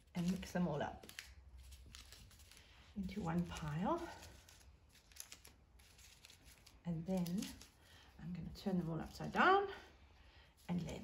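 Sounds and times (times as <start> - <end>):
paper cards rustling and clicking: 0.0 - 8.0.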